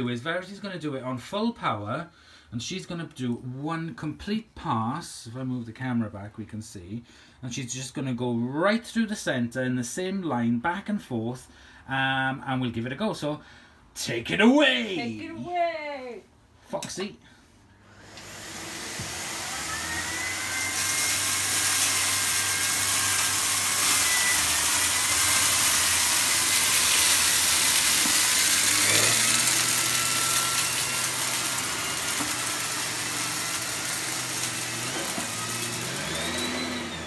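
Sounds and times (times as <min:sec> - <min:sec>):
vacuum cleaner running: 0:17.8 - 0:37.0.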